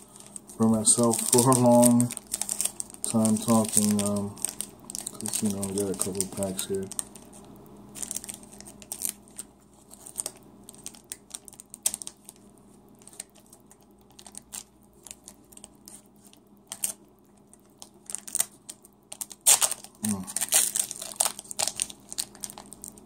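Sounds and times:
card wrappers crinkling: 0:00.0 - 0:23.0.

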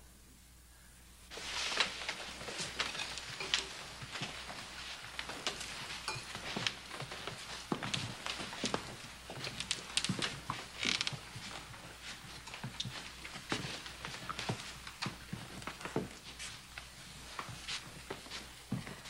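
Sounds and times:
footsteps of people walking: 0:01.3 - 0:19.0.

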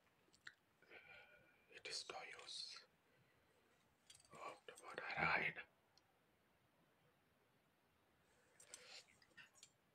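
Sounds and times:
man whispering: 0:00.8 - 0:03.0, 0:04.2 - 0:05.8.

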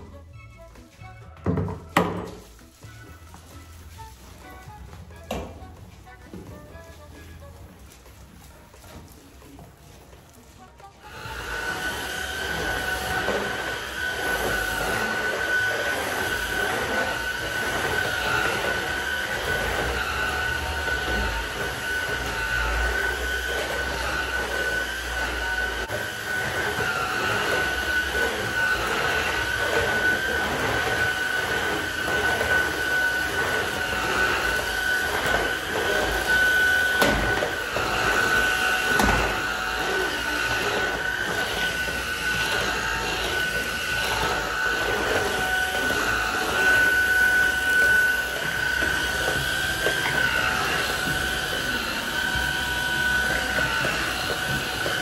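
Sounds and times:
vacuum cleaner motor whine: 0:00.0 - 0:55.0.

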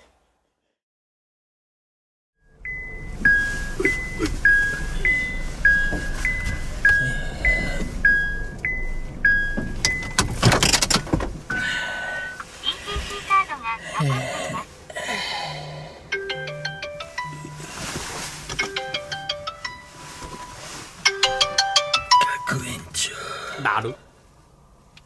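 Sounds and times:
phone ringtone beeps: 0:02.5 - 0:10.1, 0:16.1 - 0:17.7, 0:18.6 - 0:22.6
long single beep: 0:02.6 - 0:10.2.

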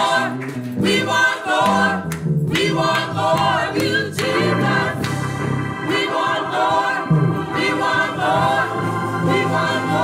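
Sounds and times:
gospel choir singing: 0:00.0 - 0:10.0.

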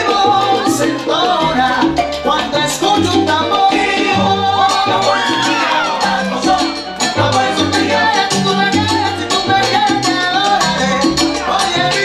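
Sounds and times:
salsa music: 0:00.0 - 0:12.0.

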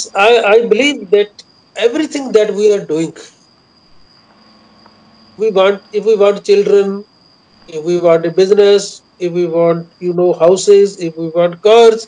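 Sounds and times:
man speaking: 0:00.0 - 0:03.3, 0:05.4 - 0:07.0, 0:07.7 - 0:12.0
faint high-pitched whine: 0:00.0 - 0:12.0
low hiss: 0:00.0 - 0:12.0.

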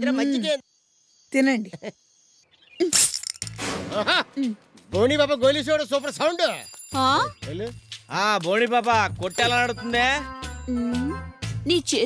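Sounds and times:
film dialogue: 0:02.4 - 0:12.0
sharp crash: 0:03.0 - 0:04.4
background music: 0:03.6 - 0:12.0.

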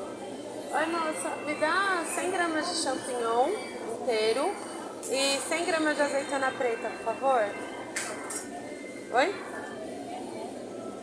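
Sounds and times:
faint music: 0:00.0 - 0:11.0
shop background noise: 0:00.0 - 0:11.0.

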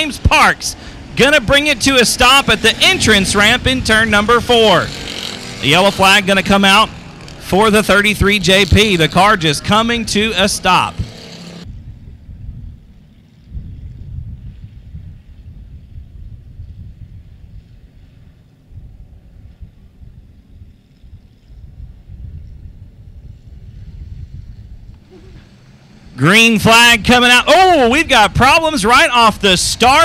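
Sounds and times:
race cars rumbling slowly: 0:00.0 - 0:13.9, 0:17.4 - 0:30.0
wind buffeting microphone: 0:00.0 - 0:30.0.

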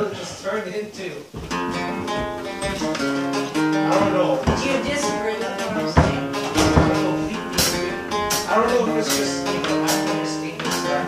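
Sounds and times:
acoustic guitar strumming: 0:01.2 - 0:11.0.

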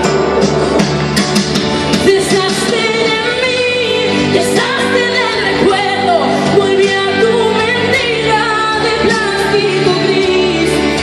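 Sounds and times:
instrumental accompaniment: 0:00.0 - 0:11.0
woman singing into a microphone: 0:01.9 - 0:11.0.

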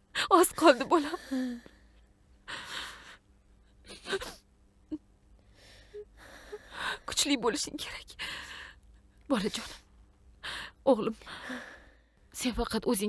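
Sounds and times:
woman sobbing: 0:02.5 - 0:05.0.

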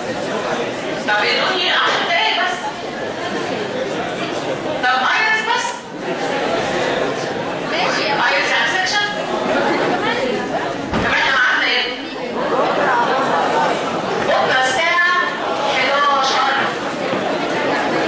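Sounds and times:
overlapping voices in a hall: 0:00.0 - 0:18.0.

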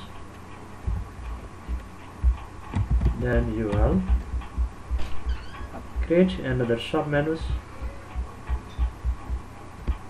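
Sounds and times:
faint electrical hum: 0:00.0 - 0:10.0
low dull thuds: 0:00.0 - 0:10.0.

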